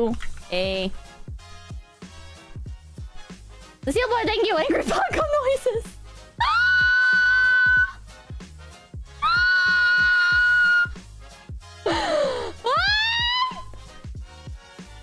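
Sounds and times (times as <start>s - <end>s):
background music with steady beat: 0.0s - 15.0s
woman screaming: 6.4s - 8.0s, 9.2s - 11.0s, 12.0s - 13.8s.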